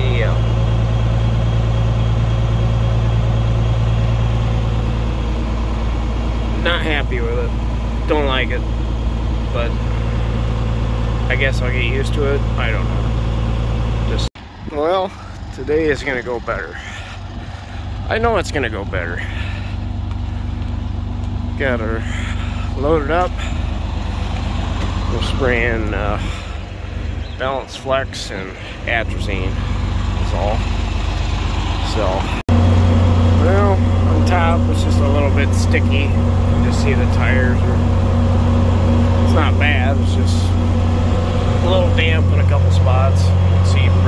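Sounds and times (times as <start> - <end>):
engine idling: 0.0 - 44.0
person speaking: 39.1 - 44.0.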